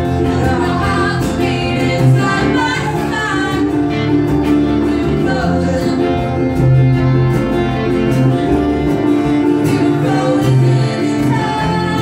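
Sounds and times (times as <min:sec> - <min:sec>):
person singing: 0:00.0 - 0:06.7, 0:09.4 - 0:12.0
country band playing: 0:00.0 - 0:12.0
fiddle: 0:00.0 - 0:12.0.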